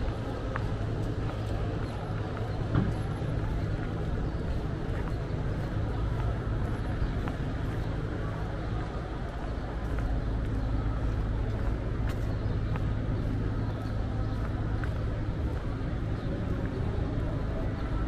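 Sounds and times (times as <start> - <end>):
faint voices: 0.0 - 18.0
traffic rumble: 0.0 - 18.0.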